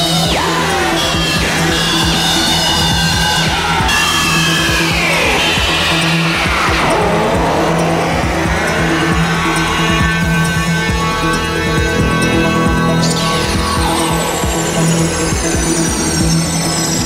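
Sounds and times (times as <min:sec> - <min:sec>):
pulsing low drone: 0:00.0 - 0:17.0
swooping synthesizer tones: 0:00.0 - 0:17.0.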